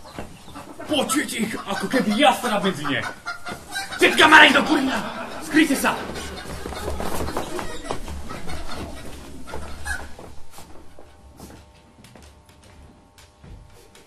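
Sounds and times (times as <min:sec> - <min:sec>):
hurried footsteps on wooden stage: 0:02.5 - 0:14.0.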